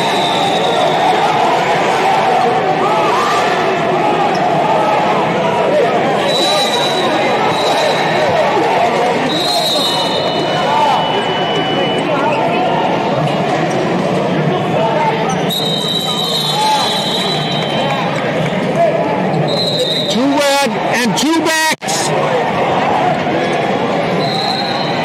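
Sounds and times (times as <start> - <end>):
hubbub of voices in an arena: 0.0 - 25.0
loud voice calling out: 20.1 - 22.1.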